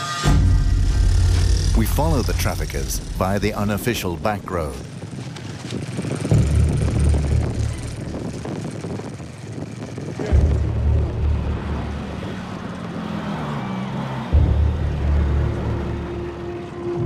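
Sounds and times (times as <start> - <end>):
motorcycle engine running: 0.2 - 16.7.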